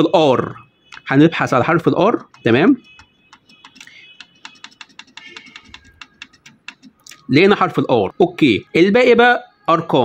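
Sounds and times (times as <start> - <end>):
printer button clicks: 2.2 - 7.0.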